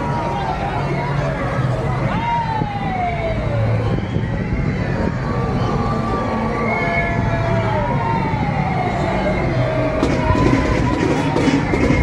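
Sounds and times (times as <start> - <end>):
crowd noise: 0.0 - 12.0
siren winding down: 6.6 - 12.0
tractor engine running: 10.0 - 12.0.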